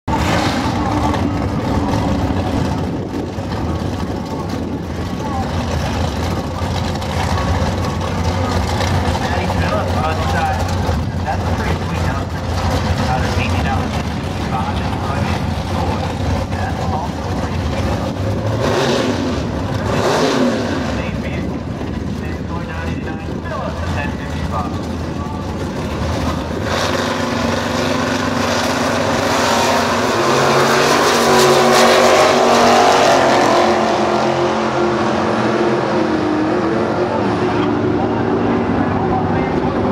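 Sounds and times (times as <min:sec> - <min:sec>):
race car engines running: 0:00.0 - 0:39.9.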